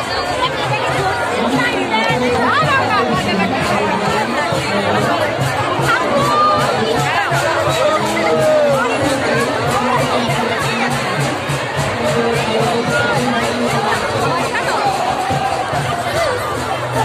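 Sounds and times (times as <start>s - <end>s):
crowd talking and calling: 0.0s - 17.0s.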